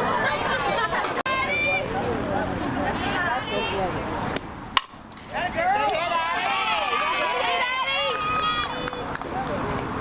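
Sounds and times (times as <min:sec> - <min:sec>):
spectators' voices: 0:00.0 - 0:10.0
bat cracking a ball: 0:04.8 - 0:05.3.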